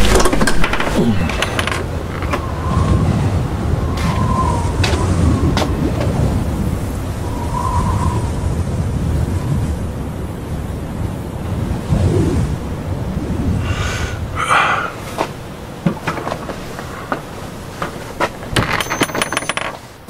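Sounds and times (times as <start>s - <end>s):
low rumbling noise: 0.0s - 18.6s.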